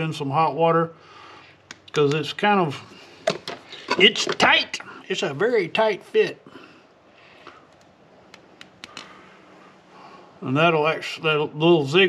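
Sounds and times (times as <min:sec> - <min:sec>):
plastic tubing handling: 0:03.2 - 0:04.9.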